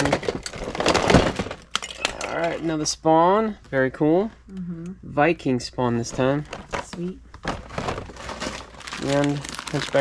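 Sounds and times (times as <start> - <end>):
plastic toy packaging clattering: 0.0 - 2.6, 6.1 - 10.0.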